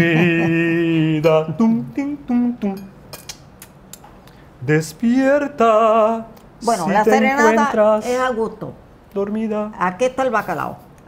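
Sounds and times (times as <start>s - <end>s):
cutlery and dishes clinking: 2.8s - 3.4s.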